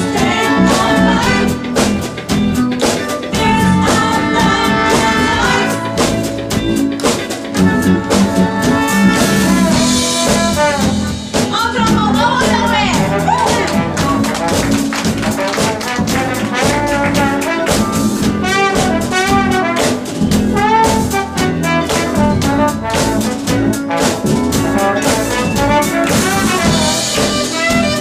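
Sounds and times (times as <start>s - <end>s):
horn section: 0.0s - 2.1s, 3.4s - 6.6s, 7.6s - 28.0s
drum kit beat: 0.0s - 28.0s
live band playing soul music: 0.0s - 28.0s.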